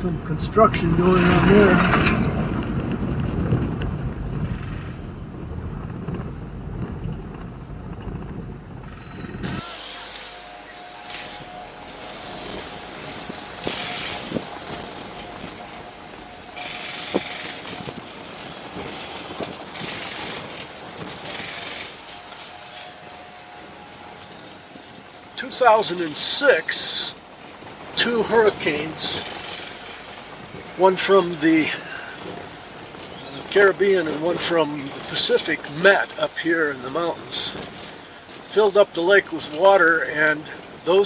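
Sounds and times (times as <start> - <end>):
high-pitched squealing tones: 0.0 - 6.5, 8.7 - 41.0.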